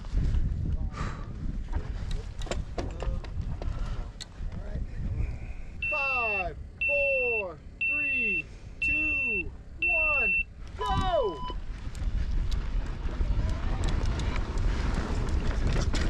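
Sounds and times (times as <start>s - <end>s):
stones and bike rattling: 1.6s - 4.1s, 11.6s - 16.0s
longer start beep: 5.8s - 11.6s
short high timer beeps: 5.8s - 11.6s
bike tyres crunching on gravel: 11.6s - 16.0s.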